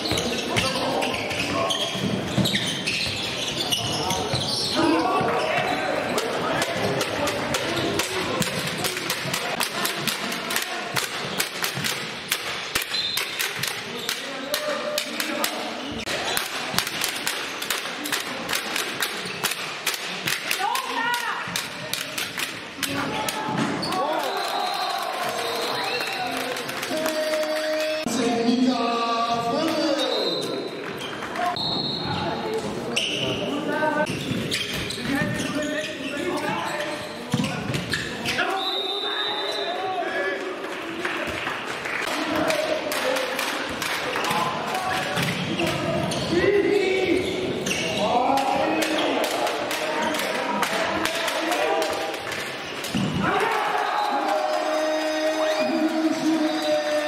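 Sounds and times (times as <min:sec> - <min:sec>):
shoes squeaking on court: 0:00.0 - 0:06.4, 0:29.7 - 0:38.6, 0:45.3 - 0:48.2
ball bouncing on hall floor: 0:00.0 - 0:24.0, 0:36.3 - 0:38.3, 0:42.1 - 0:46.4
players' voices echoing: 0:00.0 - 0:57.0.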